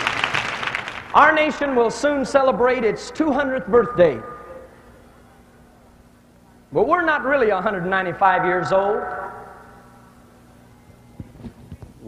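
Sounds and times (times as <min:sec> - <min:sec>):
man's amplified voice: 0:01.1 - 0:04.8, 0:06.7 - 0:10.0
hall ambience: 0:01.1 - 0:11.2.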